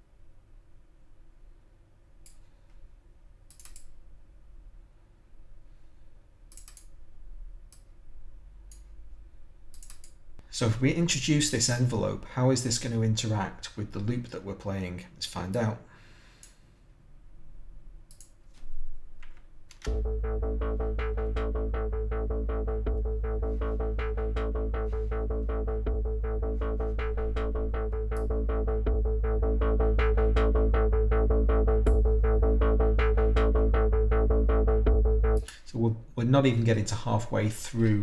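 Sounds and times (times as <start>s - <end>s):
faint low hum: 0.0s - 38.0s
computer mouse clicking: 3.5s - 4.0s, 6.5s - 7.0s, 9.7s - 10.2s, 18.1s - 18.4s
filtered drum loop: 19.9s - 35.8s.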